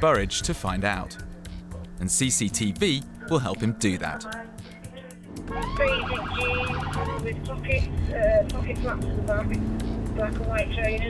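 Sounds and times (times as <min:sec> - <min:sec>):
indistinct voices: 0:01.7 - 0:11.0
car engine and road rumble: 0:04.2 - 0:11.0.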